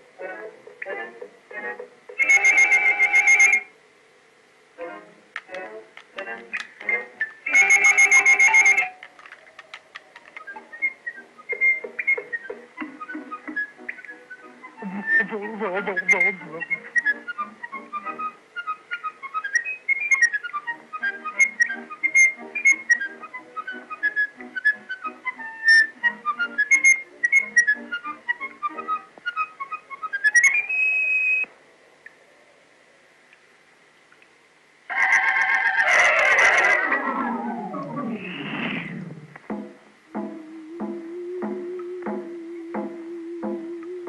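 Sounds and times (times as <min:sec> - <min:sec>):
whistled tune: 0:02.2 - 0:03.7, 0:06.9 - 0:09.0, 0:10.4 - 0:15.3, 0:16.0 - 0:31.5, 0:40.1 - 0:44.0
sliding tones falling in pitch: 0:34.9 - 0:44.0
soft accompaniment: 0:39.4 - 0:44.0.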